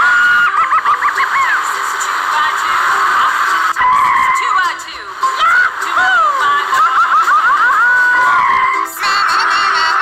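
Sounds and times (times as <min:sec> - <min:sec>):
tinny electronic toy sounds: 0:08.1 - 0:10.0.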